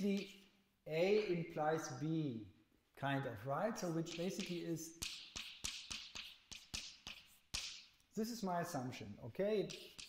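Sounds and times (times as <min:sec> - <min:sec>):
chalk scratching on blackboard: 0:03.8 - 0:07.9, 0:09.6 - 0:10.0
chalk tapping on blackboard: 0:03.8 - 0:08.0, 0:09.6 - 0:10.0.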